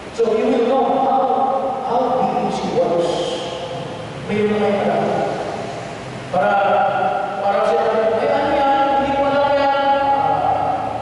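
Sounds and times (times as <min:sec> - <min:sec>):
man chanting over loudspeakers: 0:00.1 - 0:05.6, 0:06.3 - 0:11.0.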